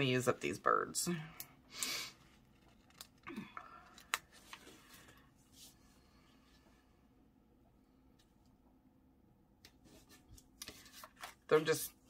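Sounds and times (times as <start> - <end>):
soft paper rustling: 2.1 - 6.8, 9.8 - 12.0.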